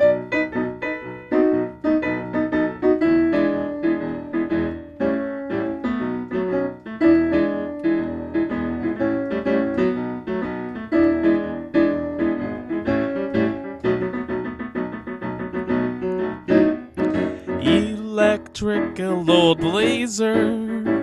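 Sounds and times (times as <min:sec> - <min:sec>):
keyboard playing busy runs: 0:00.0 - 0:21.0.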